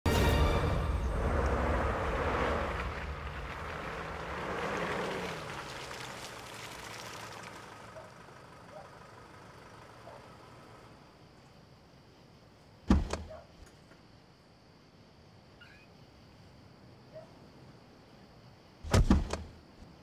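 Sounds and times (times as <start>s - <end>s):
pickup truck engine driving: 0.1s - 11.6s.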